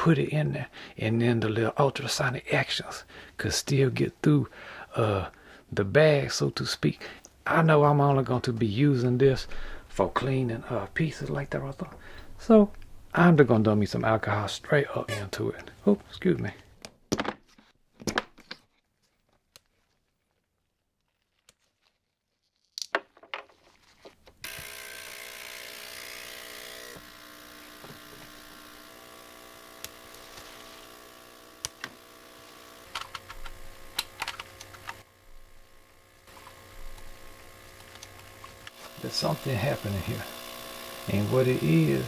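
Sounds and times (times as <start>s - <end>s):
ultrasonic cleaner buzzing hum: 24.4s - 42.0s
small handling clicks: 32.9s - 35.1s.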